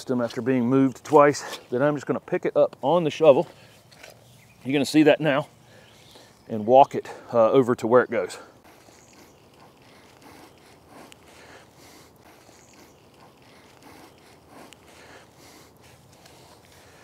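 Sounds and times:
footsteps in soil: 0.0s - 7.2s, 8.1s - 17.0s
shovel scraping soil: 0.2s - 1.8s, 8.7s - 17.0s.

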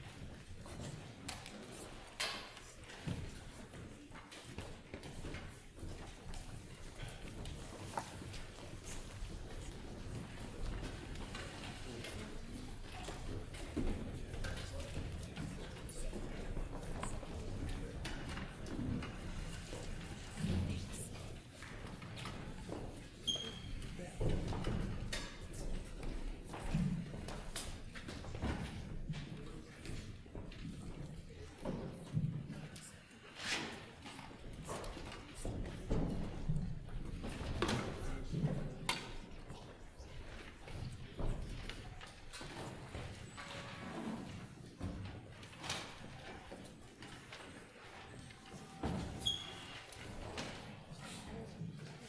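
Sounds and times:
footsteps on wooden stage: 0.0s - 32.8s.

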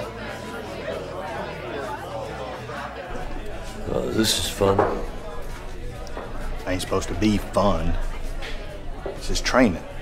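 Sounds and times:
faint background music: 0.0s - 10.0s
many voices chattering: 0.0s - 10.0s.

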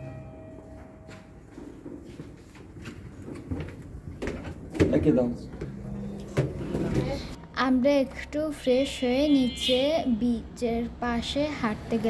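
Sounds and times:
lift arrival chime: 0.0s - 1.9s
shuffling footsteps: 0.2s - 7.4s.

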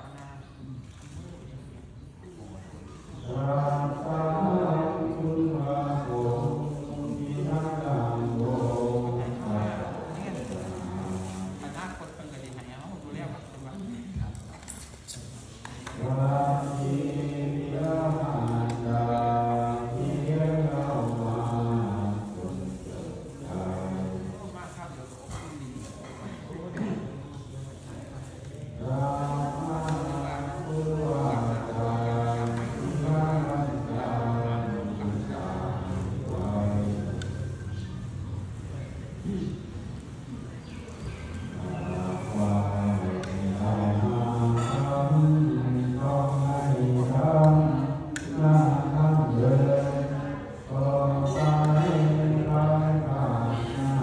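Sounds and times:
man chanting in low voice: 0.0s - 54.0s.

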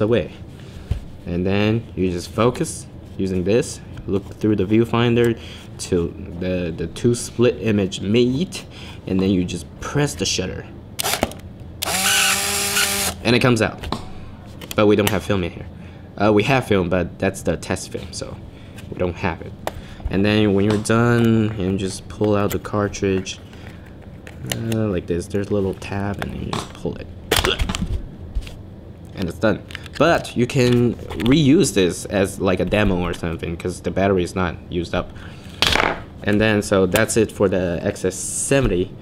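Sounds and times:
camera motor whirring: 11.0s - 13.2s.

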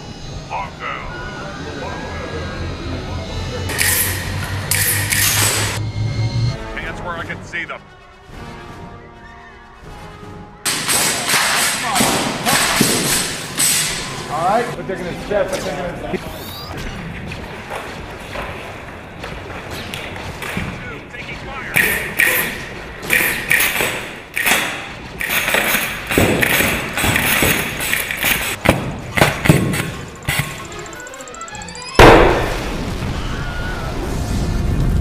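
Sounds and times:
sharp bangs and thuds: 26.0s - 30.6s
loud explosion: 32.0s - 35.0s.

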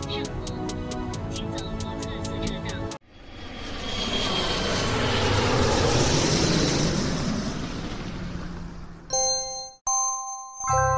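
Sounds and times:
music: 0.0s - 3.0s, 9.9s - 10.9s
thin whine: 3.0s - 8.9s
jet engine rush: 3.0s - 9.1s.

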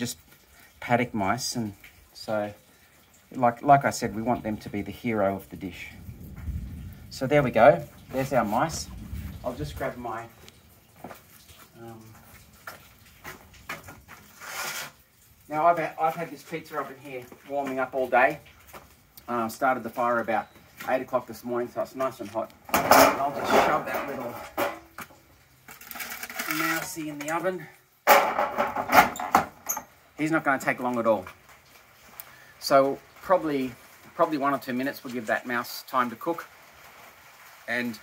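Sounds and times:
footsteps: 6.3s - 6.7s, 7.8s - 15.0s, 15.7s - 19.2s, 19.9s - 25.9s
wooden door scraping brick: 14.2s - 15.0s.

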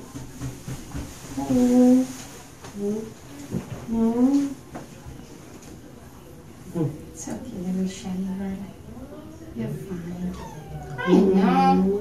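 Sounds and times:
cat yowling: 10.3s - 11.9s.

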